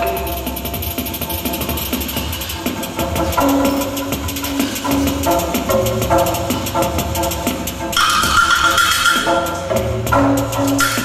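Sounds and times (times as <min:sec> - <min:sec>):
rapid clicking rhythm: 0:00.0 - 0:11.0.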